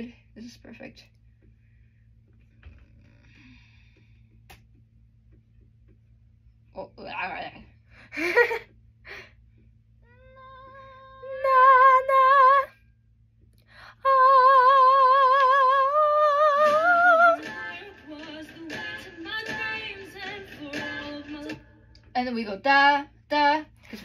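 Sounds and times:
woman singing with vibrato: 10.1 - 12.8, 13.8 - 21.6.

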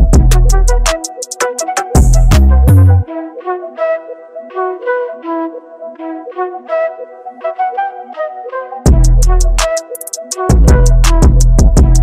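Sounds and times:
melody of short pitched notes: 0.4 - 3.1.

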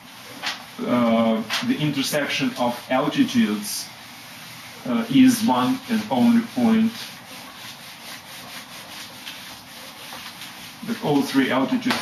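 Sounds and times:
eraser scrubbing whiteboard: 0.0 - 12.0.

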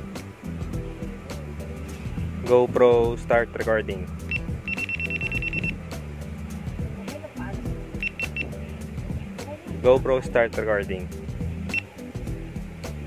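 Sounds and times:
background music: 0.0 - 13.0
camera beeping: 4.2 - 5.8, 8.0 - 8.6.

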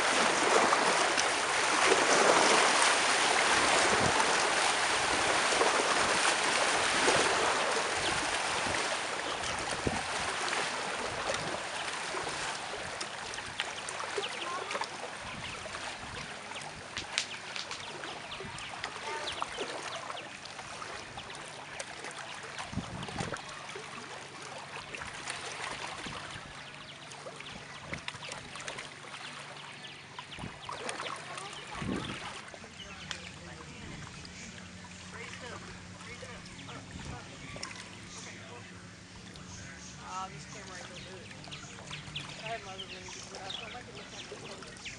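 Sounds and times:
small waves lapping on rocks: 0.0 - 44.9.

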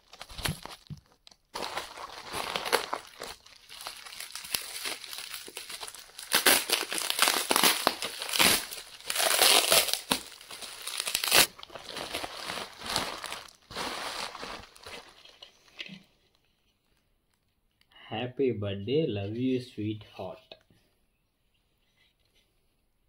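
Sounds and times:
bubble wrap crinkling: 0.0 - 17.5.

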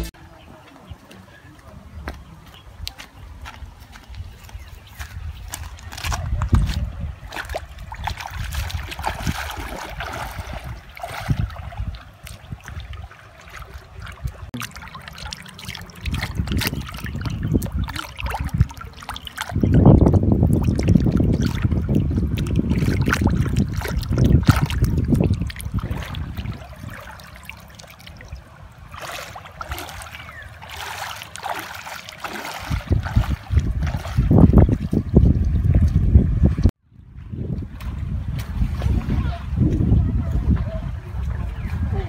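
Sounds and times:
river water splashing: 5.5 - 36.7.

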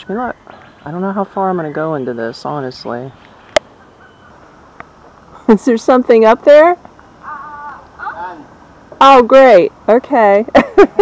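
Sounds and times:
low steady outdoor hiss: 0.0 - 11.0.

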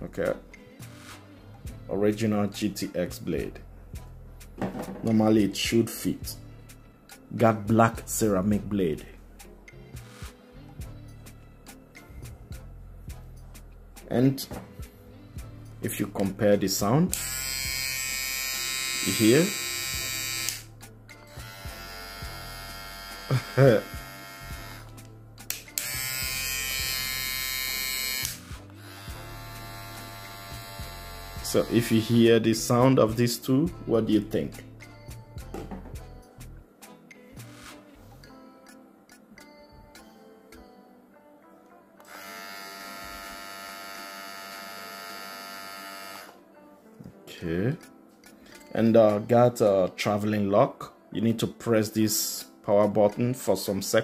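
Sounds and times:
faint background music: 0.0 - 54.0
hair trimmer buzzing: 17.1 - 20.7, 21.3 - 32.2, 42.0 - 46.4.

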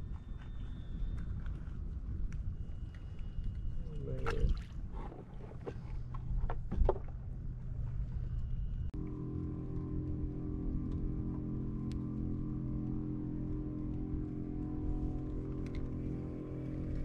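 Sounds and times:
water lapping against hull: 0.2 - 7.8.

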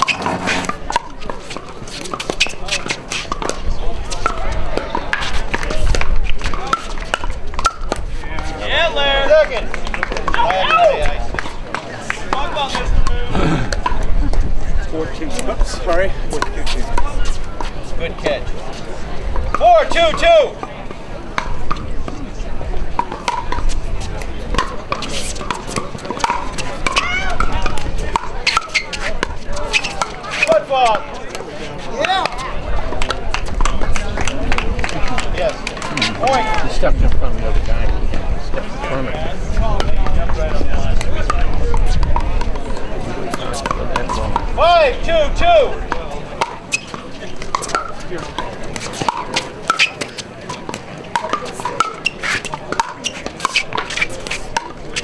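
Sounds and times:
crowd chatter: 0.0 - 55.0
paddles hitting plastic ball: 23.0 - 29.4, 46.4 - 55.0.

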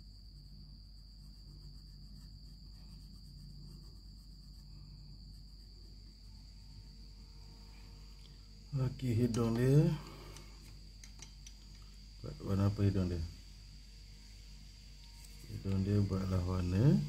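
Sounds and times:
pencil scratching on paper: 0.0 - 6.6
low hum: 0.0 - 17.0
high-pitched whine: 11.8 - 17.0.

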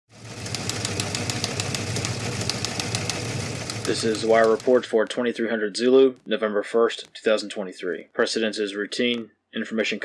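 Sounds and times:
low mechanical rumble: 0.1 - 5.1
rapid even ticks: 0.2 - 9.3
person speaking: 3.8 - 10.0.

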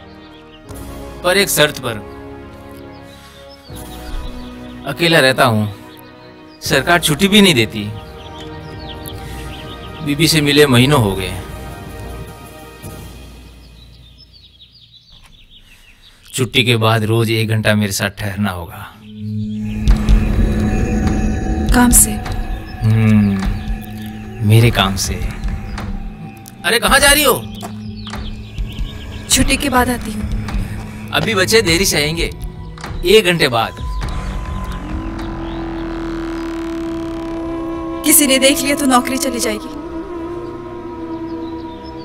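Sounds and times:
soft background music: 0.0 - 15.0, 16.3 - 42.0
film dialogue: 0.0 - 42.0
low-pitched held voice: 22.8 - 23.6.

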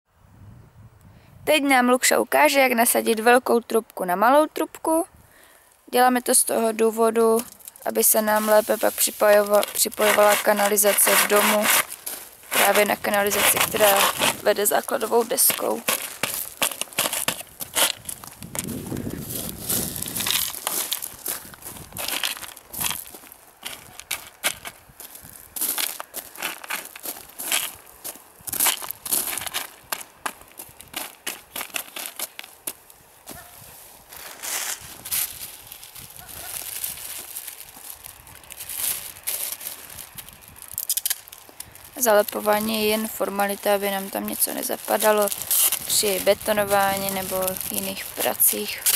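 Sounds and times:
gravel shifting underfoot: 5.3 - 48.9
plastic scraping on plastic: 7.4 - 21.2.

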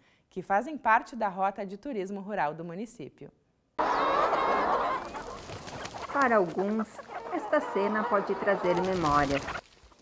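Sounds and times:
hens squawking and clucking: 3.8 - 10.0.

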